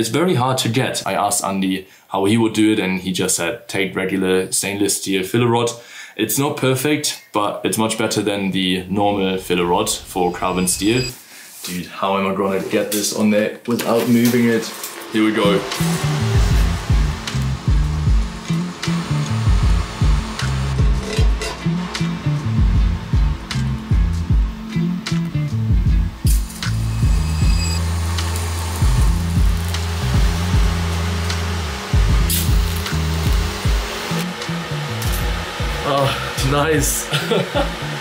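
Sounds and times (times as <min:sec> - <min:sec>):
background music with bass: 0:08.6 - 0:11.1, 0:15.2 - 0:38.0
welding arc hissing: 0:14.2 - 0:38.0.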